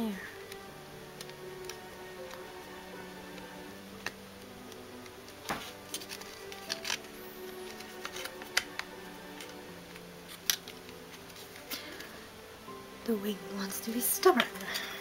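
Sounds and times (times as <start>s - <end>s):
quiet background music: 0.0s - 15.0s.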